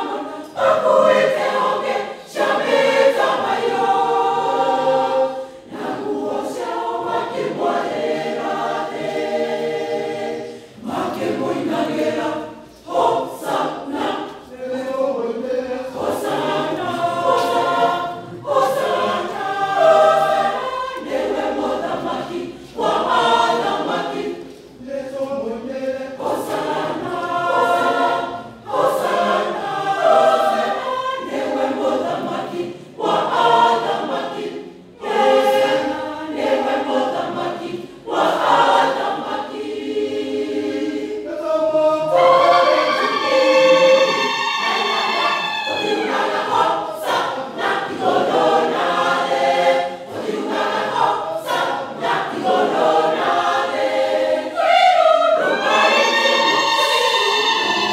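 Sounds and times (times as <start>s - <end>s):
choir singing: 0.0s - 57.9s.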